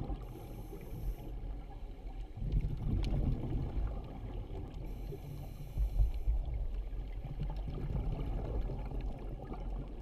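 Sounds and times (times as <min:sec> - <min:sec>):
faint hiss: 0:00.0 - 0:01.8
muffled underwater rumble: 0:00.0 - 0:10.0.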